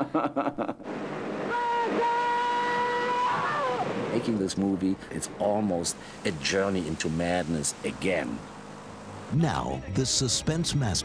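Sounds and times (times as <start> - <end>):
rushing water: 0.9 - 9.5.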